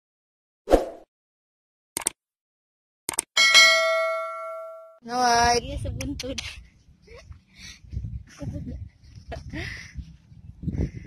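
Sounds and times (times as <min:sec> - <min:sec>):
notification bell chime: 0:03.4 - 0:05.0.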